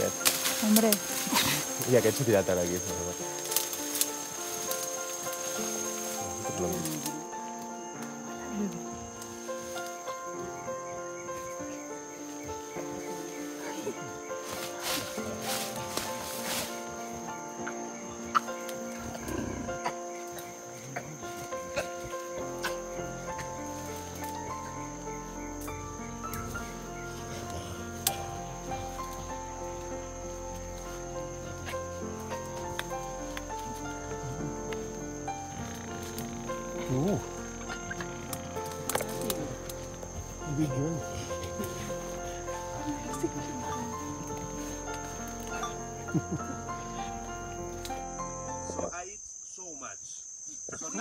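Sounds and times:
background music with held chords: 0:00.0 - 0:48.9
forest insects droning: 0:00.0 - 0:51.0
gorilla grunt: 0:18.3 - 0:22.8.

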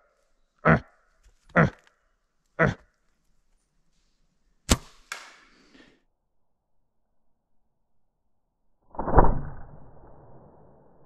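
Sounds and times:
short grunting calls: 0:00.6 - 0:01.9, 0:02.6 - 0:03.0
arrow striking with a thud: 0:04.7 - 0:05.5, 0:08.9 - 0:10.0
bowstring release crack: 0:04.7 - 0:05.6.

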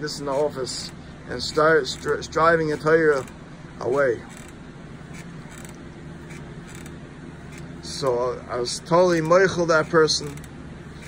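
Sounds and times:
steady low hum: 0:00.0 - 0:11.0
faint creaks and clicks: 0:04.0 - 0:07.7.

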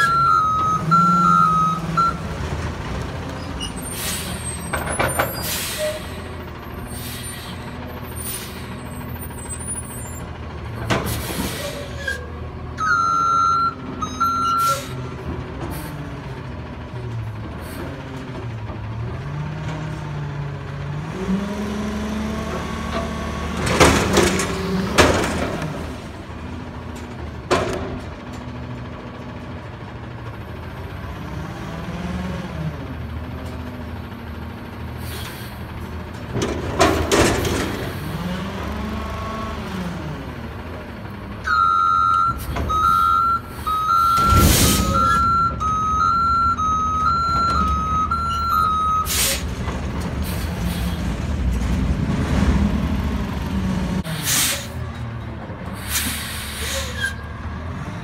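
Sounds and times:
reversing alarm beeping: 0:00.0 - 0:02.2, 0:12.8 - 0:15.0, 0:41.4 - 0:49.2
diesel engine revving: 0:00.0 - 0:58.0.

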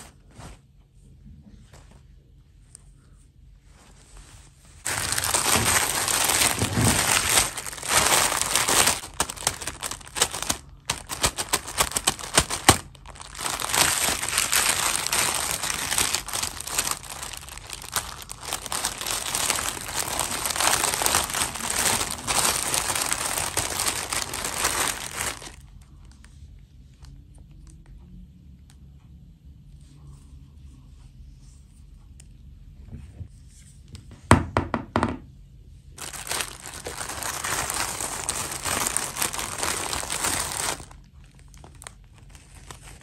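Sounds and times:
plastic bag crinkling: 0:04.8 - 0:26.1, 0:36.0 - 0:43.0
plastic doll knocking on tabletop: 0:34.3 - 0:35.2.

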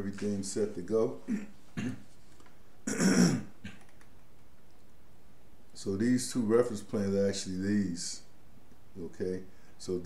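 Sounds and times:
man clearing throat cough: 0:01.3 - 0:02.0, 0:02.9 - 0:03.8.

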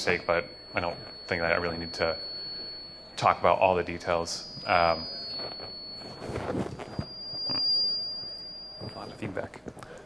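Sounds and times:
high-pitched feedback ring: 0:00.0 - 0:09.6.

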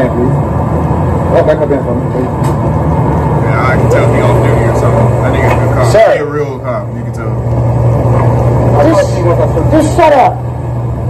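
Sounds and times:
vehicle engine humming: 0:00.0 - 0:11.0
people talking: 0:01.3 - 0:02.4, 0:03.4 - 0:07.4, 0:08.7 - 0:10.4.

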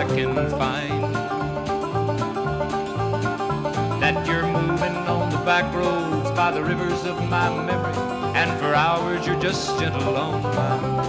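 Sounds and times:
person singing: 0:00.0 - 0:01.2, 0:04.0 - 0:11.0
acoustic guitar picking: 0:00.0 - 0:11.0
banjo picking: 0:00.0 - 0:11.0
steady bass line: 0:00.0 - 0:11.0.

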